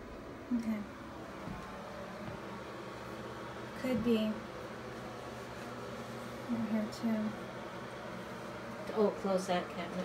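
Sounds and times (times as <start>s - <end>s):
faint hiss and hum: 0.0s - 10.0s.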